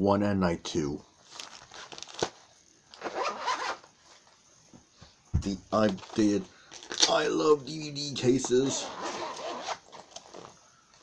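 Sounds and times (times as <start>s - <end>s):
zipper pull rasping: 3.0s - 3.9s, 8.6s - 10.6s.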